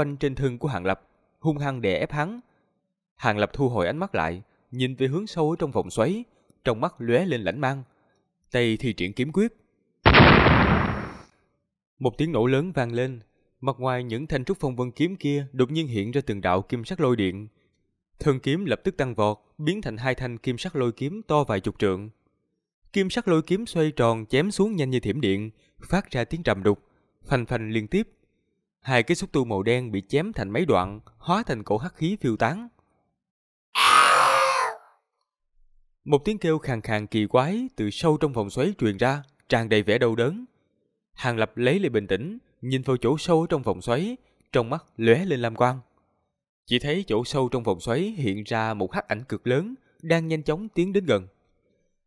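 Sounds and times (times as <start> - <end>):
explosion blast: 10.1 - 11.2.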